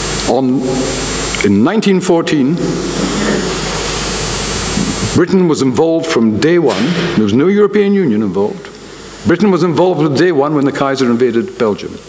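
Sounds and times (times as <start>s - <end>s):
low hum: 0.0s - 1.6s, 2.2s - 5.5s
steady hiss: 0.0s - 5.7s.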